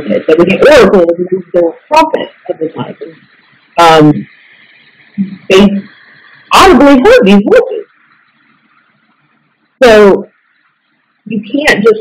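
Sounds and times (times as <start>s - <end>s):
woman speaking: 0.0s - 4.3s, 5.2s - 7.9s, 9.8s - 10.3s, 11.3s - 12.0s
background hiss: 0.0s - 12.0s.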